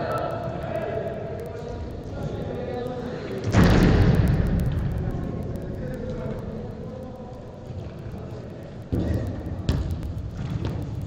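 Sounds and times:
low steady hall rumble: 0.0s - 11.0s
rumbling tail of loud hit: 3.5s - 5.2s.

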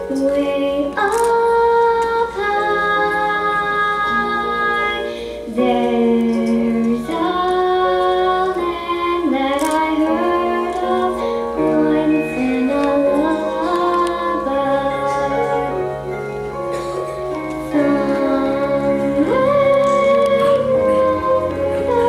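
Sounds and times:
girl singing into a microphone: 0.0s - 16.0s, 17.6s - 22.0s
instrumental accompaniment: 0.0s - 22.0s.

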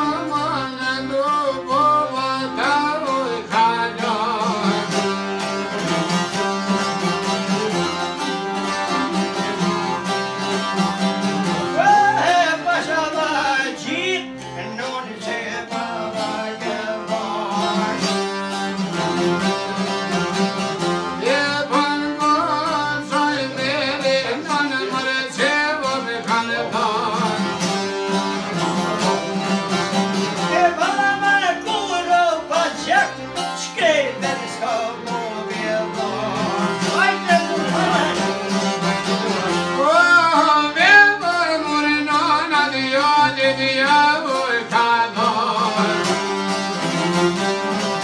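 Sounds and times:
man singing ornamented melody: 0.0s - 5.3s, 11.3s - 46.5s
folk ensemble of lutes and accordion: 0.0s - 48.0s.

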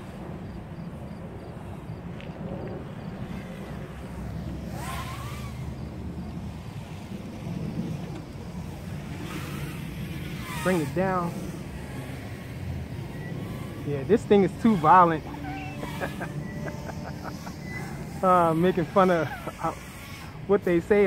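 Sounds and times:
distant quadcopter buzzing: 0.0s - 21.0s
wind: 0.0s - 21.0s.

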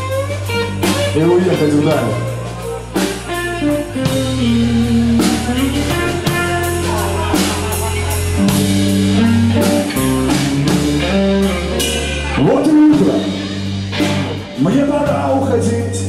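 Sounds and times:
bass guitar notes: 0.0s - 16.0s
drum kit beat: 0.0s - 16.0s
electric guitar: 0.0s - 16.0s.

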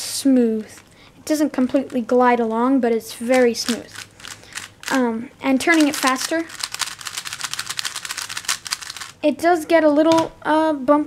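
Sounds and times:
puzzle cube plastic clicks: 3.3s - 5.0s, 5.6s - 9.2s.

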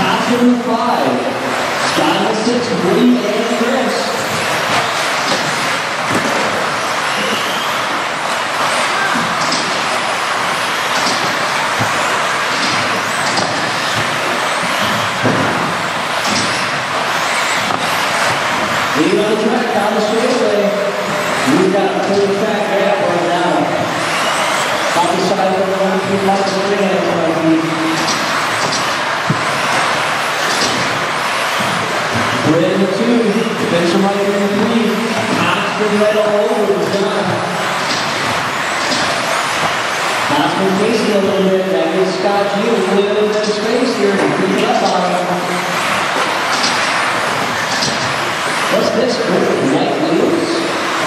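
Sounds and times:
rc car motor whines: 2.9s - 19.0s, 21.0s - 22.4s, 23.6s - 25.8s, 27.7s - 32.4s, 37.5s - 41.1s, 45.1s - 49.2s
rc car motors and tyres hissing: 4.2s - 15.2s, 15.8s - 19.0s, 23.9s - 25.2s, 28.0s - 32.4s, 37.7s - 40.4s, 45.6s - 48.8s.

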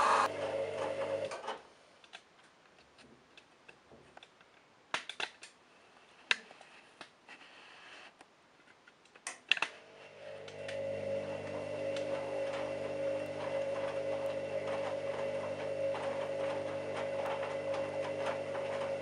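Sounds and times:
washing machine drum motor humming: 0.0s - 1.4s, 10.2s - 19.0s.

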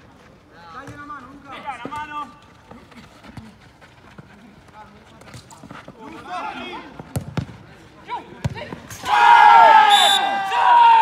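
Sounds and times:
running footsteps: 2.3s - 6.4s
players shouting: 8.9s - 11.0s.

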